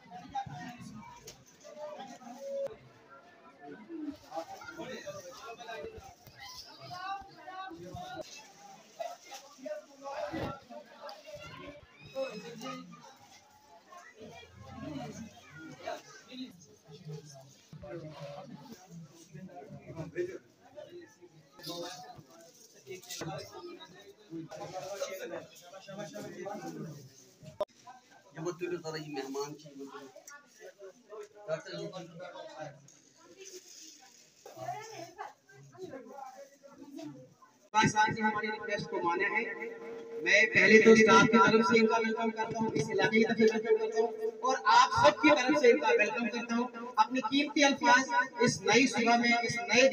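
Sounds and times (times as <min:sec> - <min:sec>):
background chatter with children: 0:00.0 - 0:49.9
faint voices in a room: 0:00.0 - 0:49.9.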